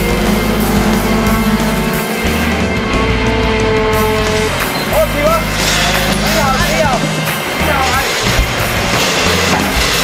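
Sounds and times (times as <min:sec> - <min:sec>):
wavering gliding melody: 0:00.0 - 0:08.3
background music: 0:00.0 - 0:10.0.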